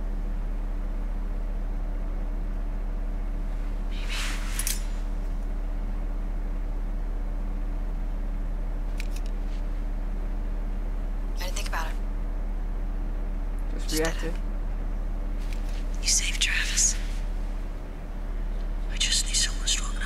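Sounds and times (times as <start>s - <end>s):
short hiss: 3.9s - 5.0s.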